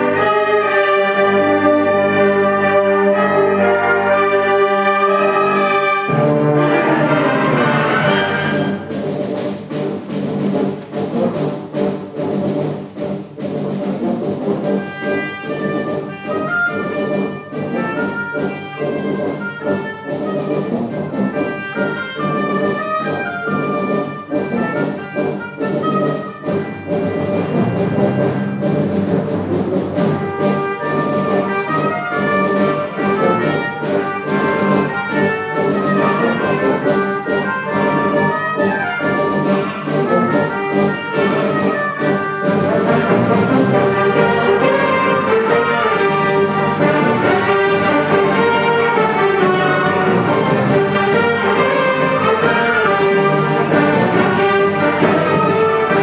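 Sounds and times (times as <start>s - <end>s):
wind band playing: 0.0s - 56.0s.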